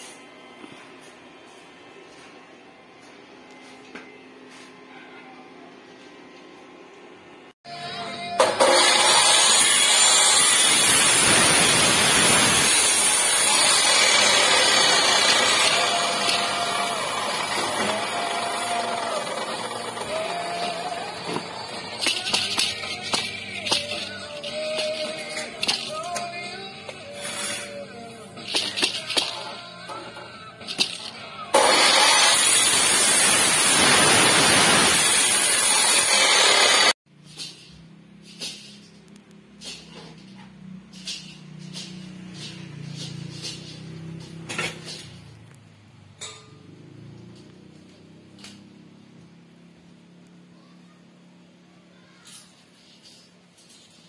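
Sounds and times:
chop saw cutting steel: 8.4s - 26.3s, 30.7s - 37.0s.

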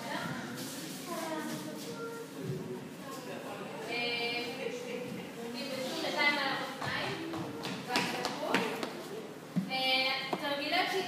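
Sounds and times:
voices in a room: 0.0s - 11.0s.

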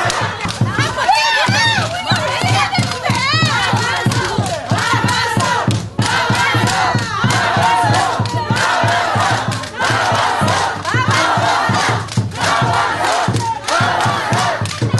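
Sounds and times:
crowd of women chanting: 0.0s - 14.9s.

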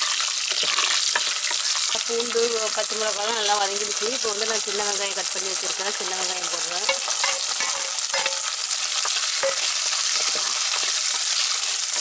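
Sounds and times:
shallots sizzling in hot oil: 0.0s - 12.0s.

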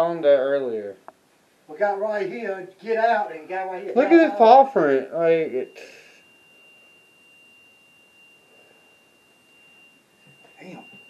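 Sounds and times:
room hiss: 0.0s - 11.0s
high-pitched electronic tone: 3.9s - 11.0s.

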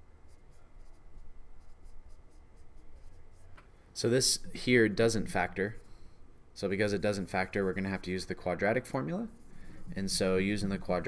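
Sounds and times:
low steady hum: 0.0s - 11.0s
stylus tapping and scratching screen: 0.2s - 6.0s, 6.9s - 11.0s.

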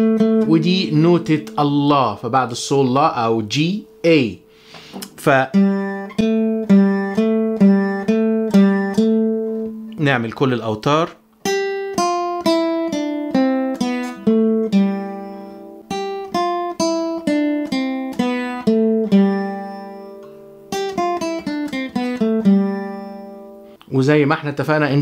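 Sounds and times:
classical guitar fingerpicking: 0.0s - 10.2s, 11.2s - 23.8s.

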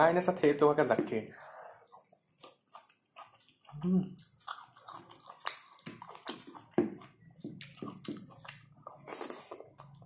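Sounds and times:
wet chewing and lip smacks: 1.8s - 10.0s.

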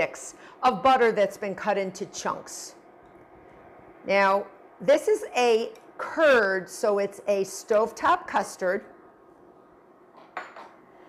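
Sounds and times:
glass bowl clinking on counter: 10.4s - 10.8s.

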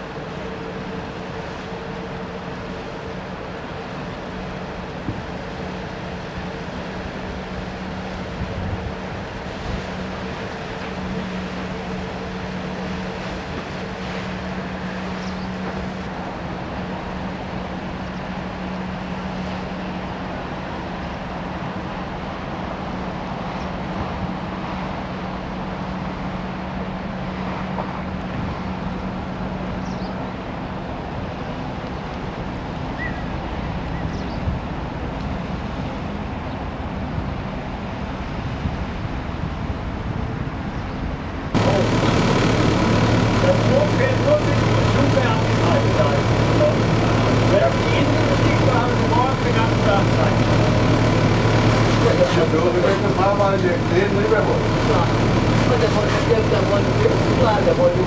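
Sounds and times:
boat engine humming: 0.0s - 58.0s
wind noise on microphone: 37.0s - 41.5s.

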